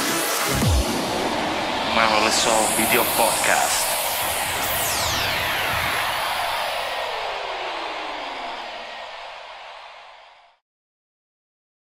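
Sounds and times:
synthesized downward noise sweep: 0.0s - 10.3s.

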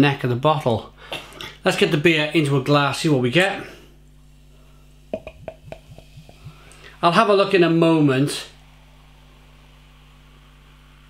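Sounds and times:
beer glugging from bottle: 5.2s - 6.9s.

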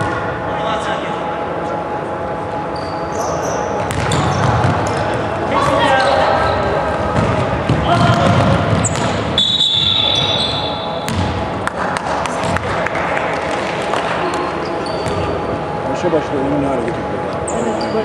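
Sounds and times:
shoes squeaking on court: 2.7s - 6.6s, 8.7s - 10.8s, 14.6s - 15.4s
basketball bouncing: 3.8s - 5.0s, 7.1s - 9.4s, 11.0s - 11.5s, 12.3s - 12.8s, 15.0s - 15.3s
referee's whistle: 8.8s - 11.0s.

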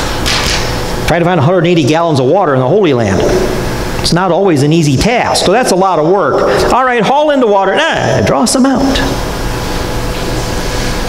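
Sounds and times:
ventilation hiss: 0.0s - 11.0s.

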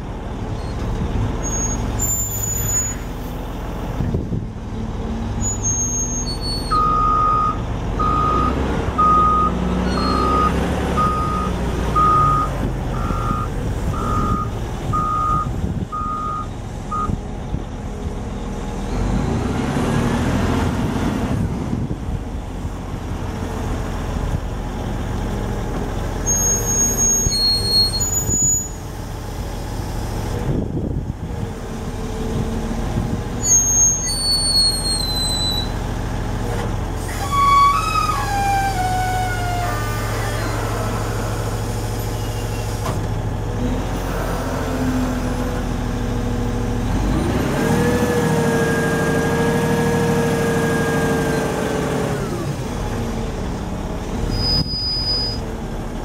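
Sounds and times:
diesel engine running: 0.0s - 56.0s
high squeaks: 0.6s - 3.2s, 5.4s - 7.1s, 9.8s - 11.4s, 26.3s - 28.8s, 33.4s - 35.8s, 37.0s - 42.8s, 54.3s - 55.5s.

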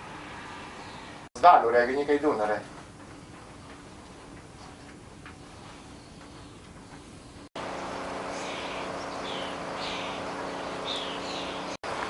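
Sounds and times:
bird chirps: 8.3s - 11.8s.

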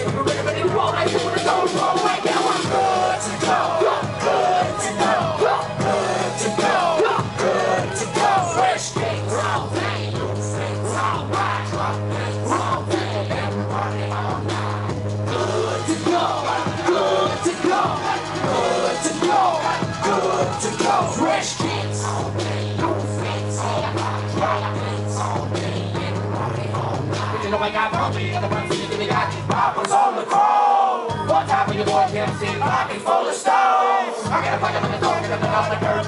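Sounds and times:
loud hip hop music: 0.0s - 36.0s
deep bass note: 2.6s - 29.5s.

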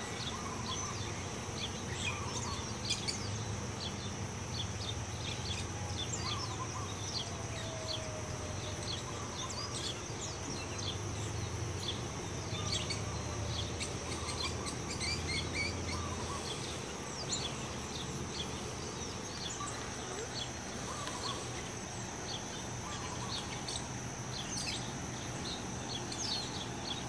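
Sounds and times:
high insect buzz: 0.0s - 27.0s
small birds chirping: 0.0s - 27.0s.

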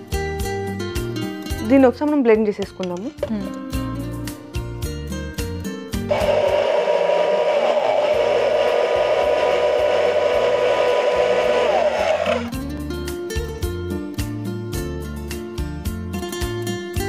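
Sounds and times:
hand blender whirring: 6.1s - 12.5s.

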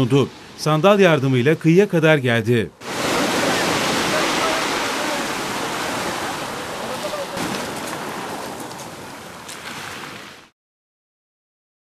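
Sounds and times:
surf on pebble beach: 2.8s - 10.5s.

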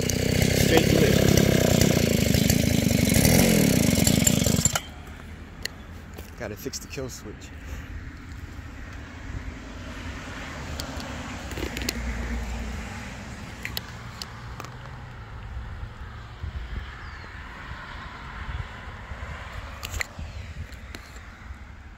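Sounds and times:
wheels on pavement: 0.0s - 6.6s, 7.6s - 21.9s
small engine rumbling: 0.0s - 21.9s
wind on microphone: 20.0s - 21.0s.

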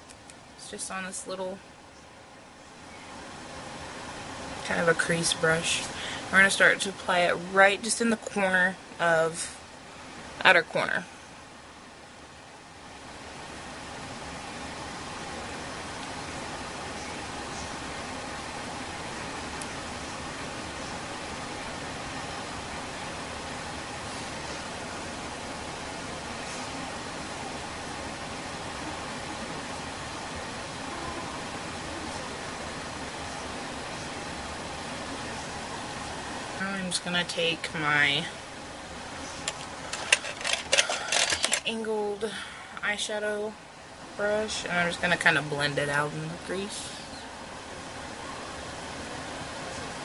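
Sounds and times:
steady hiss-like noise: 0.0s - 50.0s.

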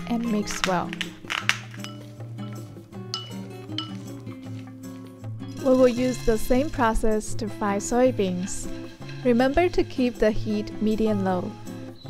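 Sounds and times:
background music: 0.0s - 12.0s
spoon clinking in ceramic bowl: 1.8s - 4.3s.

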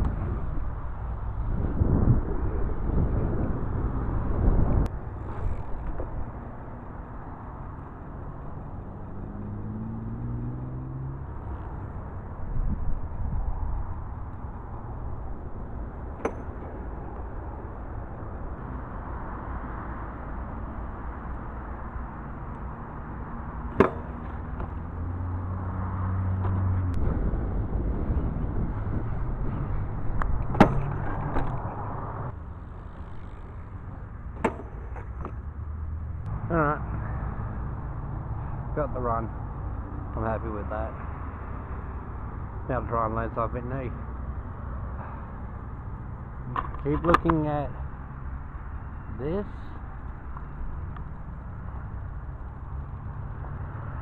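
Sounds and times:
vehicle engine passing: 7.6s - 12.5s, 18.7s - 34.3s
bike knocking on concrete and rail: 16.1s - 16.7s, 23.7s - 24.8s, 30.4s - 31.6s, 34.4s - 35.5s.

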